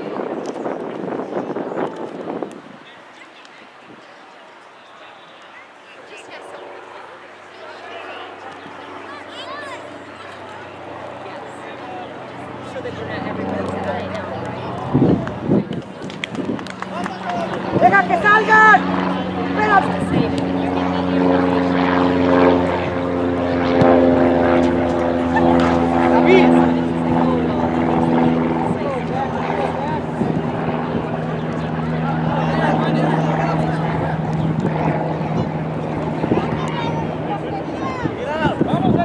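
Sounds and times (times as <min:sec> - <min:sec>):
shouted voices: 0:16.9 - 0:20.4.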